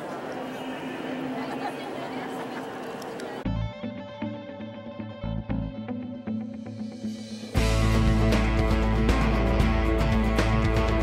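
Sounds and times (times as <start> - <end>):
murmur of voices: 0.0 - 3.5
music with guitar and bass: 3.5 - 11.0.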